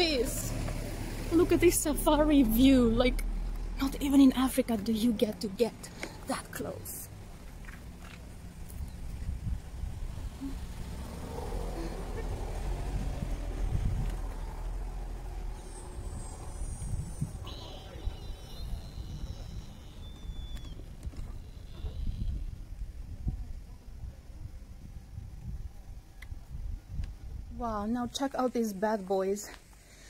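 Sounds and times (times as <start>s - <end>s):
low rumble: 7.0s - 27.9s
high thin whistling tones: 15.6s - 22.5s
faint voices: 16.6s - 20.3s.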